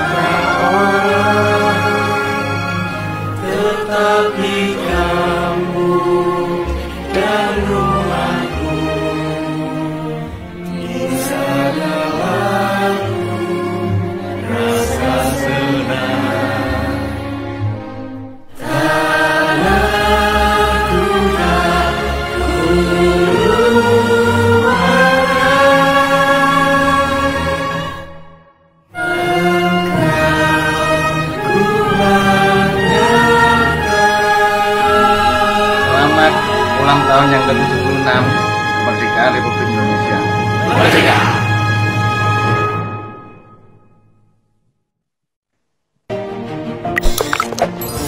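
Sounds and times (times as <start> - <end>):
several voices singing a song: 0.0 - 17.6, 18.5 - 28.2, 29.0 - 38.0, 40.6 - 41.8.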